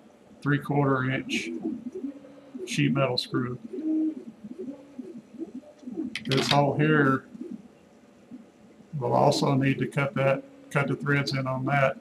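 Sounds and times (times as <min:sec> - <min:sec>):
dove cooing: 0:00.9 - 0:12.0.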